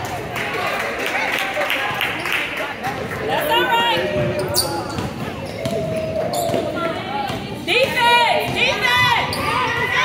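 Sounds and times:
players' voices and shouts: 2.7 - 10.0.

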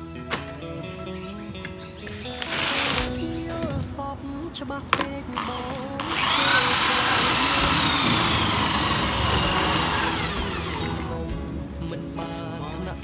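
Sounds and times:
electric drill whining: 2.1 - 3.4, 5.3 - 11.3.

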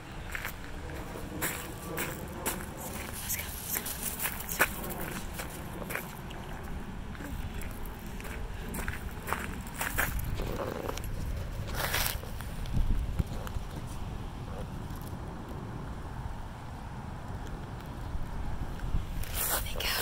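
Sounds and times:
footsteps crunching on gravel: 0.3 - 12.5.

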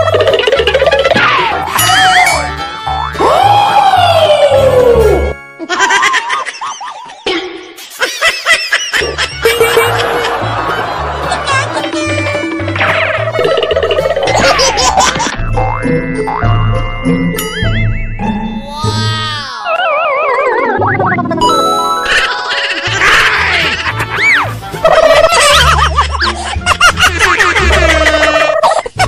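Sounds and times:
playful comedy music with bass line: 0.0 - 29.0
upward-sweeping cartoon sound effects: 16.3 - 25.6.

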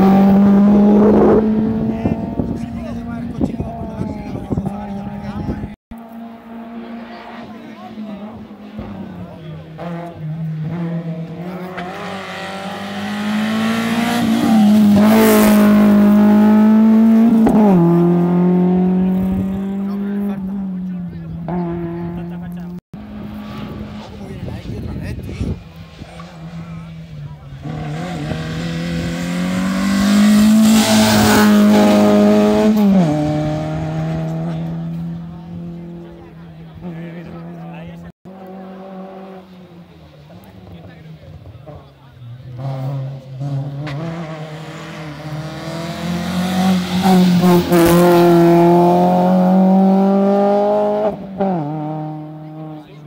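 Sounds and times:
rally cars passing at full throttle: 0.0 - 53.0.

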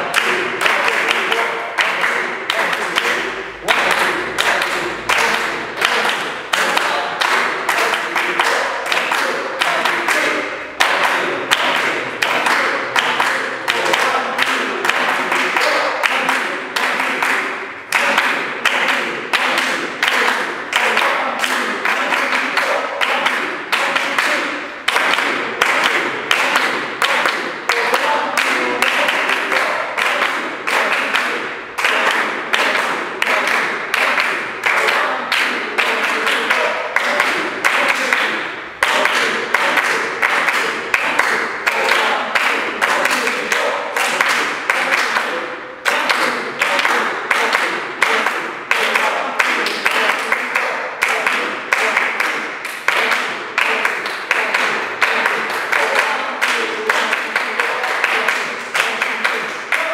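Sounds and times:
group hand-clapping: 0.0 - 59.9.

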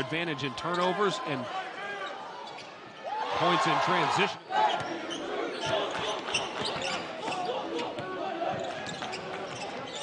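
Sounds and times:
voices in arena: 0.0 - 10.0.

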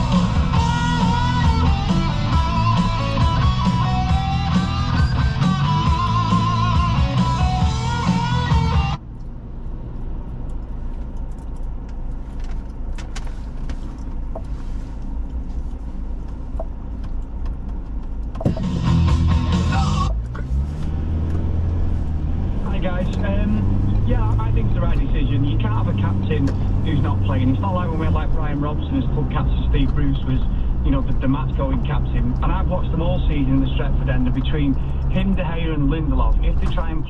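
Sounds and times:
engine and road noise in cab: 0.0 - 37.0
people talking: 19.7 - 20.6, 22.6 - 37.0.

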